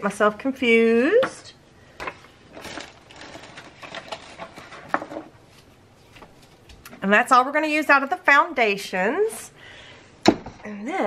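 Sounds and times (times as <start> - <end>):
paper rustling: 2.0 - 6.7.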